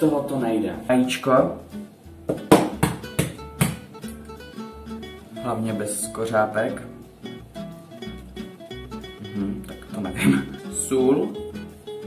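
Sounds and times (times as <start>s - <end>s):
flamenco acoustic guitar: 0.0s - 12.0s.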